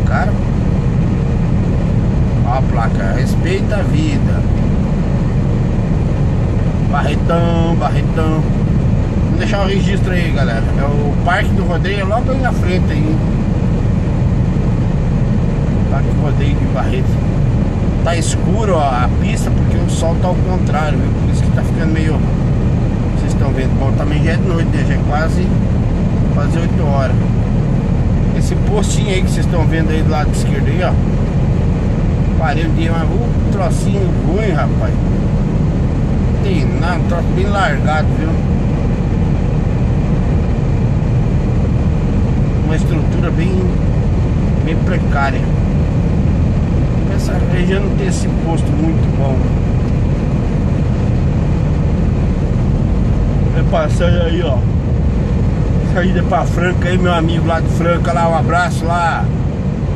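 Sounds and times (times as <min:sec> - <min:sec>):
road noise: 0:00.0 - 0:59.9
truck diesel engine droning: 0:00.0 - 0:59.9.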